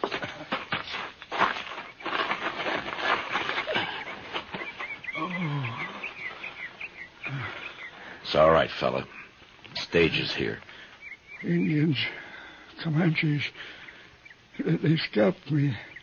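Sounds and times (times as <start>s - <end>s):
scuffling and shuffling: 0.0s - 13.5s.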